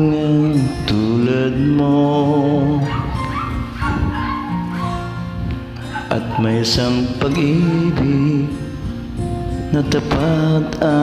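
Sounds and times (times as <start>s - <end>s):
instrumental ballad backing track: 0.0s - 11.0s.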